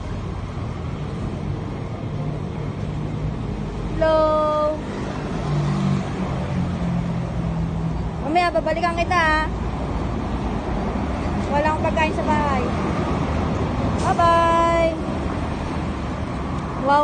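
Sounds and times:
street traffic rumble: 0.0s - 17.0s.

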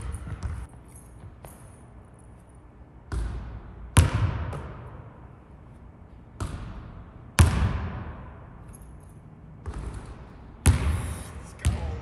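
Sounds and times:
basketball bouncing in gymnasium: 0.0s - 1.9s, 3.0s - 5.2s, 6.2s - 8.7s, 9.5s - 12.0s.

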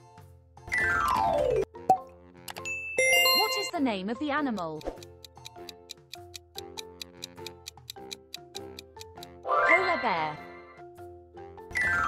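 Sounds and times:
light background music: 0.0s - 12.0s
countdown timer ticking: 3.0s - 10.0s.

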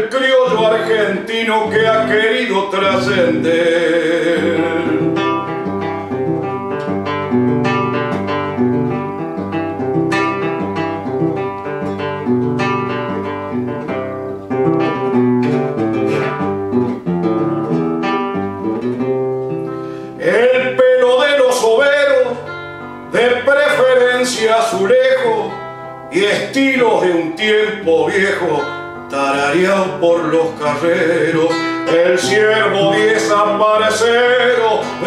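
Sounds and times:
man singing: 0.0s - 5.6s, 20.1s - 35.0s
classical guitar playing: 0.0s - 35.0s.

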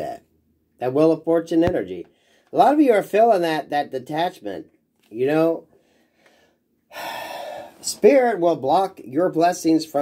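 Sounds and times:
man's noisy in-breath: 5.8s - 7.8s.

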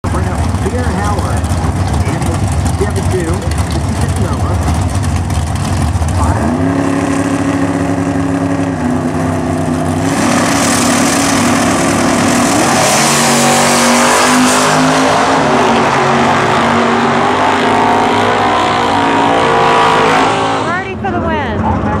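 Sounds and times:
racing car engines revving: 0.0s - 22.0s.

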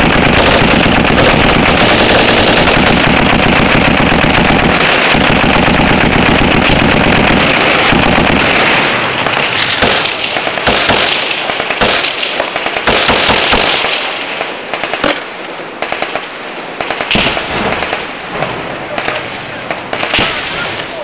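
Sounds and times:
machine gun firing bursts: 0.0s - 18.2s, 19.0s - 20.6s
rifle shots: 0.0s - 21.0s.

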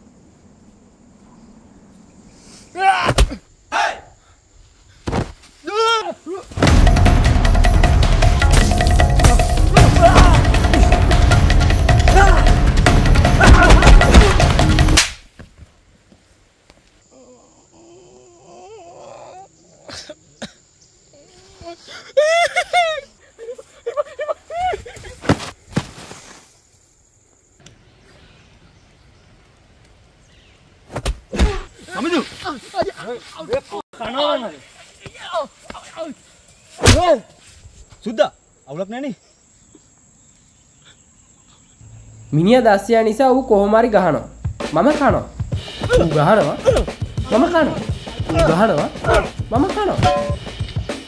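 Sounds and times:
man crying out: 9.3s - 11.1s, 12.0s - 14.6s, 21.7s - 24.8s, 45.8s - 50.4s
man groaning in pain: 9.4s - 11.0s, 12.0s - 12.7s, 45.9s - 49.4s
man moaning low: 17.1s - 19.8s
man coughing: 19.9s - 20.6s, 46.6s - 47.0s.

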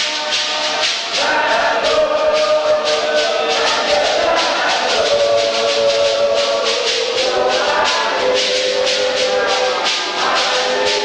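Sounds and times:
shaken percussion beat: 0.0s - 11.0s
women singing a hymn: 1.1s - 11.0s.

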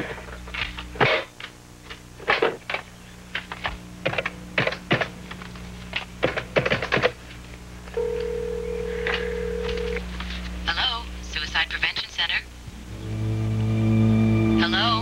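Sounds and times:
telephone ringback tone: 8.0s - 10.0s.

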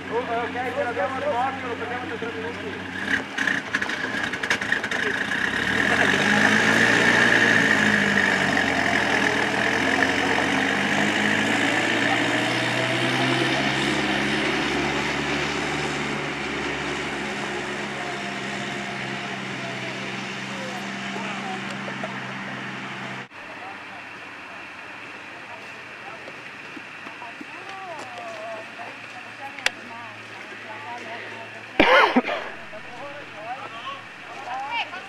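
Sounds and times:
armoured car engine revving: 0.0s - 23.3s, 31.7s - 34.3s
tyres on gravel: 24.0s - 35.0s.

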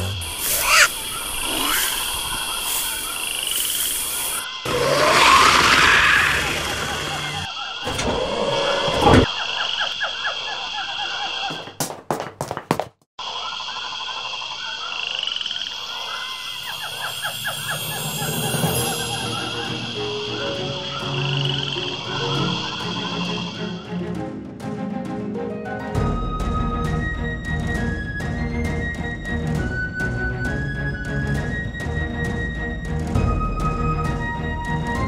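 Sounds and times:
frogs croaking: 0.0s - 11.8s, 13.2s - 24.0s
constant high tone: 15.6s - 23.6s.

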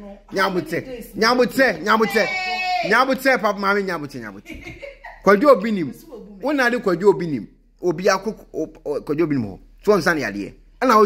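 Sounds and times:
high vocal cry: 2.0s - 3.1s.

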